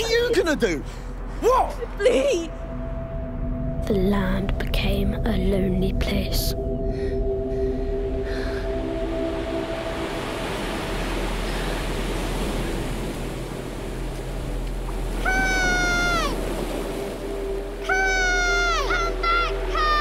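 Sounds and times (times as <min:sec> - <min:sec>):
surf noise: 0:08.7 - 0:20.0
child's high-pitched cry: 0:15.2 - 0:16.4, 0:17.8 - 0:20.0.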